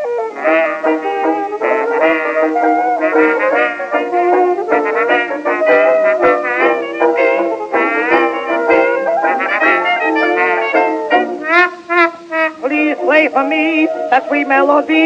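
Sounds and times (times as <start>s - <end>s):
dance band playing melody: 0.0s - 15.0s.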